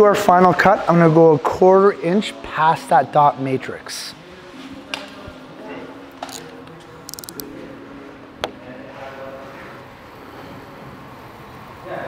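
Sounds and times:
tools clicking: 6.2s - 6.5s, 7.1s - 7.5s.

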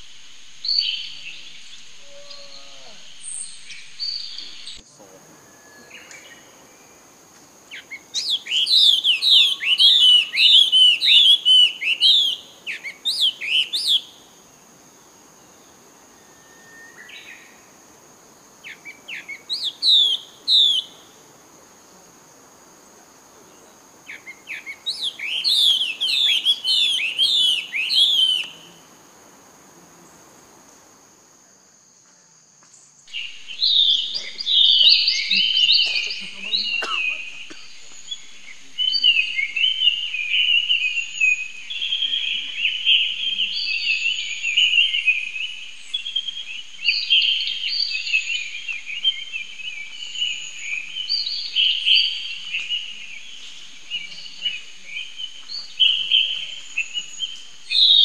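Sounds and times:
bird whistling calls: 7.7s - 14.1s, 18.7s - 21.0s, 24.1s - 28.9s, 55.2s - 58.0s.

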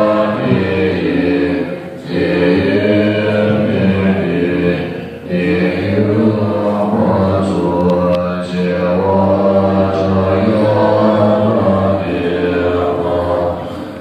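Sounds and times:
monks chanting in unison: 0.0s - 14.0s.

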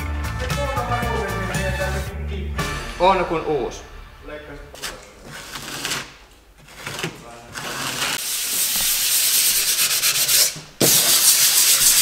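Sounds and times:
sanding filler on a wall: 7.6s - 12.0s.

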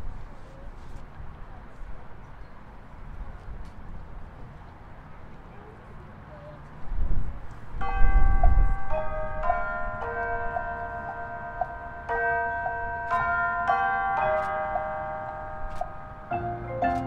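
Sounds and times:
mallet percussion ringing: 7.8s - 17.0s.

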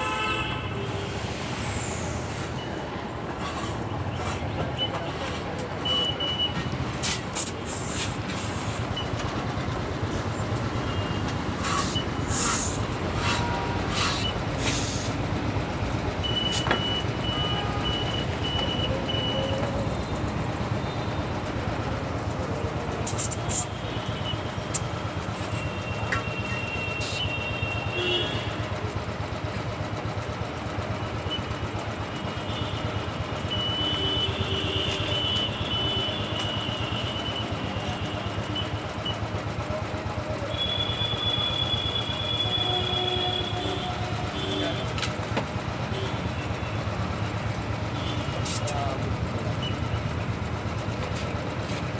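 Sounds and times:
idling engines and traffic: 0.0s - 51.9s.

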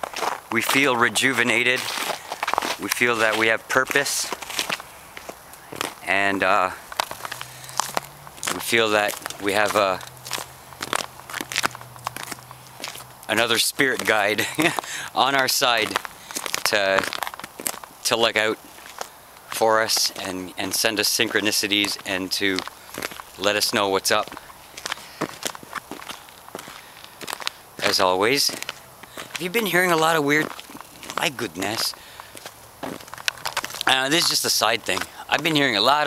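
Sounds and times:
footsteps crunching on snow: 0.0s - 36.0s.

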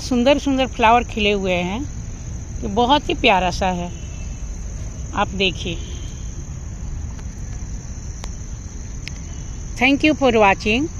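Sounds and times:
crickets chirring: 0.0s - 10.9s
low rumble: 0.6s - 9.8s.

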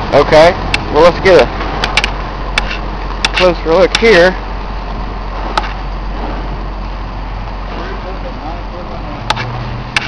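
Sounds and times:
excavator diesel engine running: 0.0s - 10.0s
sharp clicks: 1.8s - 4.2s.

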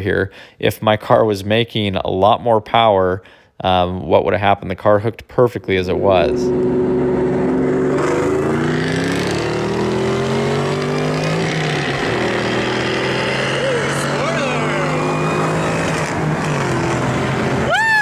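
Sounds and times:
sports car engines accelerating: 6.0s - 18.0s
wind and road noise: 6.5s - 17.7s.

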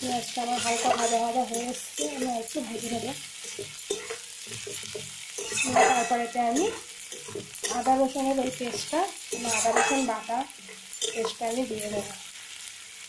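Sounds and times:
spatula scraping pan: 0.0s - 12.2s
onions sizzling in oil: 0.0s - 13.0s.

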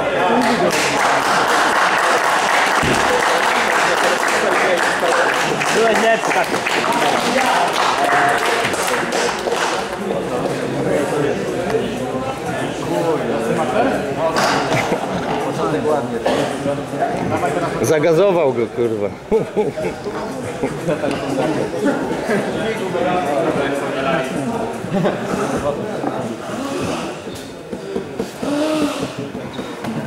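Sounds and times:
indistinct chatter: 0.0s - 30.0s.

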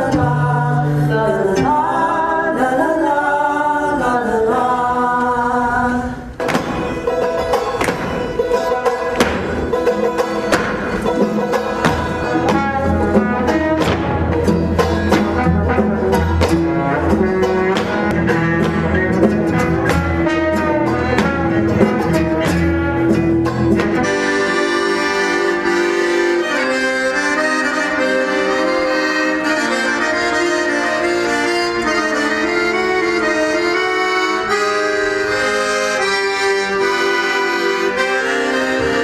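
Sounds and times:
accordion chords: 0.0s - 39.0s
bass line: 6.4s - 26.1s
banjo plucking: 6.4s - 39.0s.

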